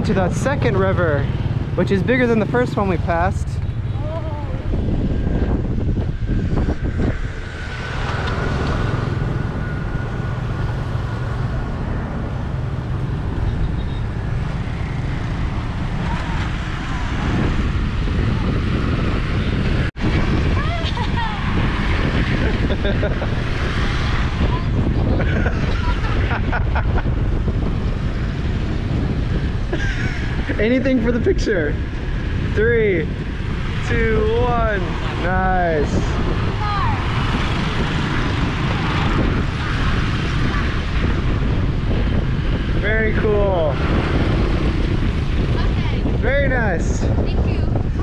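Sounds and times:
motorbike engines passing: 0.0 - 48.0
wind buffeting microphone: 0.0 - 48.0.

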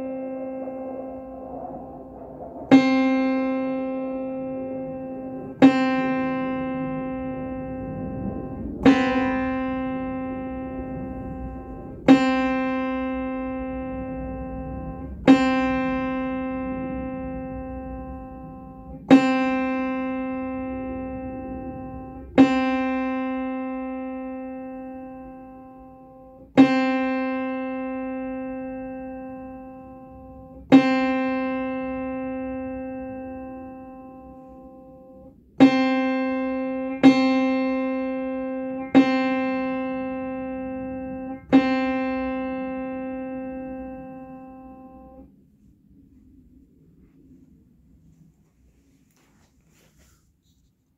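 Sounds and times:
piano note struck: 0.0 - 45.2.

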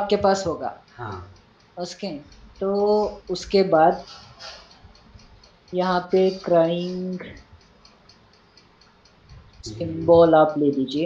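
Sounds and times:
faint ticking: 0.0 - 11.0
man speaking: 1.0 - 1.3, 9.7 - 10.3.

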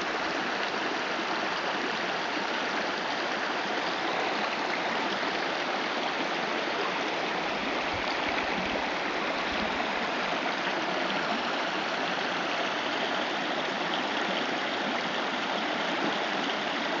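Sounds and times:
stream running over stones: 0.0 - 17.0.

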